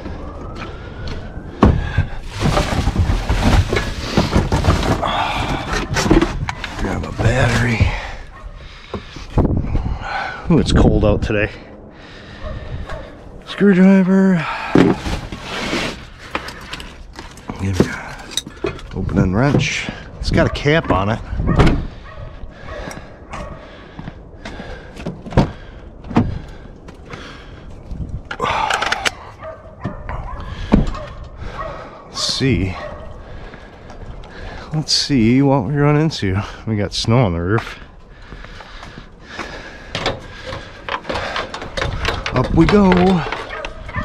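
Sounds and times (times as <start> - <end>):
knocks and rustling: 1.6 - 8.2, 39.9 - 44.0
tools being rummaged through: 2.2 - 7.8, 14.8 - 19.0
van doors thumping shut: 21.5 - 21.9.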